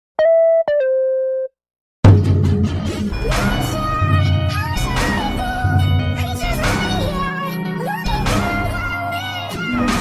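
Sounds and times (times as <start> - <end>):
electronic beep tones: 0.2 - 1.5.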